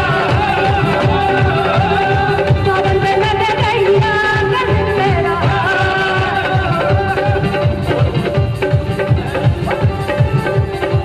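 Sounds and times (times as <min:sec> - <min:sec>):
woman singing into a microphone: 0:00.0 - 0:08.2
keyboards: 0:00.0 - 0:11.0
steady drum beat: 0:00.0 - 0:11.0.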